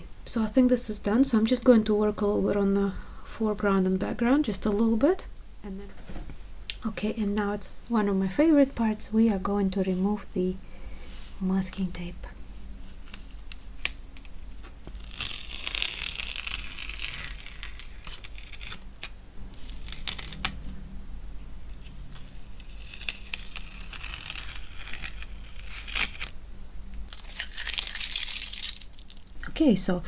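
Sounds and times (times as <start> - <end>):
tape peeling off paper: 12.9 - 20.8, 21.7 - 26.4, 27.0 - 29.4.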